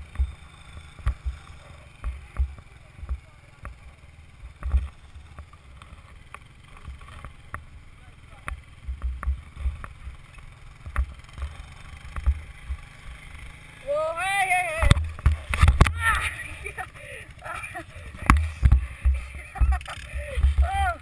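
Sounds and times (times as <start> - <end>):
sharp clicks and knocks: 14.8 - 16.0, 18.2 - 20.6.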